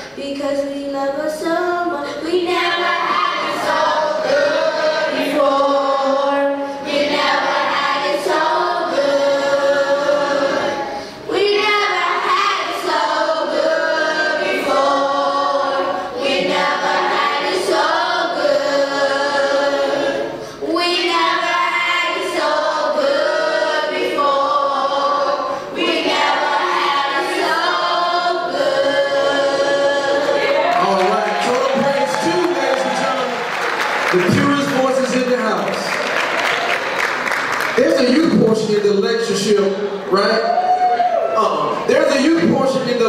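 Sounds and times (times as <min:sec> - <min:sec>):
children's choir singing: 0:01.1 - 0:35.0.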